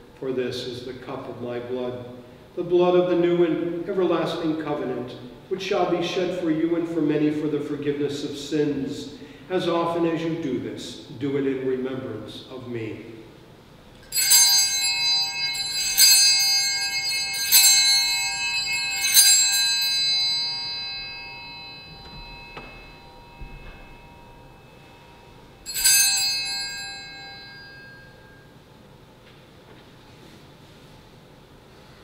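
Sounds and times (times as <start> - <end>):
altar bell ringing: 14.0 - 29.0.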